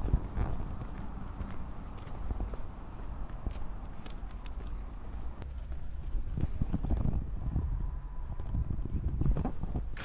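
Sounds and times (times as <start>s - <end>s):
footsteps on cobblestones: 0.0s - 6.9s
wind buffeting microphone: 0.0s - 10.0s.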